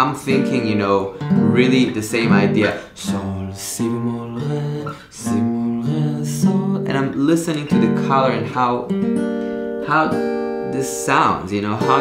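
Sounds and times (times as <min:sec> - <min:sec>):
guitar chords: 0:00.0 - 0:12.0.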